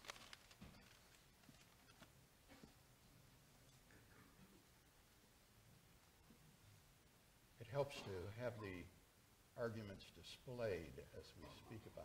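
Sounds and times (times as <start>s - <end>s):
paper rustling: 0.0s - 2.1s.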